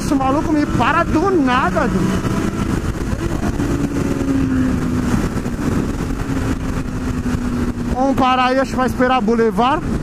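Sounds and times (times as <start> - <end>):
motorcycle engine humming: 0.0 - 10.0
wind noise on microphone: 0.0 - 10.0.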